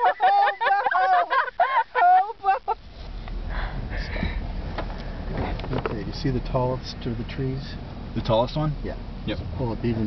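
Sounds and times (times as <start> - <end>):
person laughing: 0.0 - 2.8
car engine rumble from inside: 0.0 - 10.0
road noise: 0.0 - 10.0.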